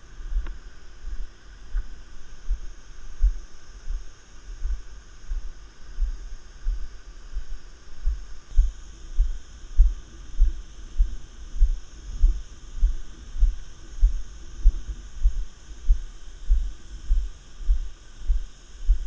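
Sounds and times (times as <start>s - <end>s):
faint steady hiss: 0.0s - 19.0s
dull footstep thuds: 1.7s - 19.0s.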